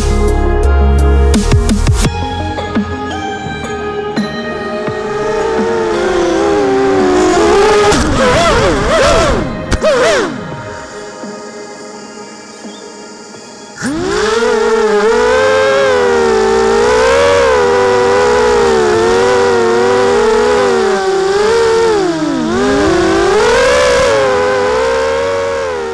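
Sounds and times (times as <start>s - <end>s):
quadcopter motors whining: 4.6s - 25.9s.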